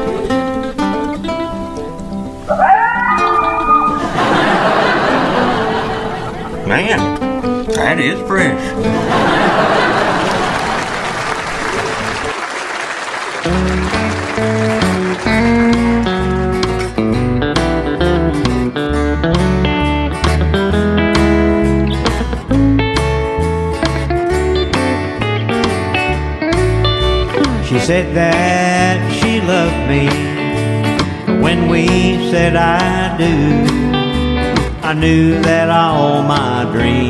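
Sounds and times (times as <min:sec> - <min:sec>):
bass guitar beat: 0:00.0 - 0:09.0, 0:13.5 - 0:37.0
electric guitar lines: 0:00.0 - 0:12.3, 0:13.4 - 0:37.0
audience applause: 0:03.0 - 0:06.6, 0:09.0 - 0:16.0
audience laughter: 0:03.2 - 0:06.8, 0:08.7 - 0:12.4
person singing: 0:27.3 - 0:30.5, 0:31.4 - 0:34.1, 0:34.8 - 0:37.0.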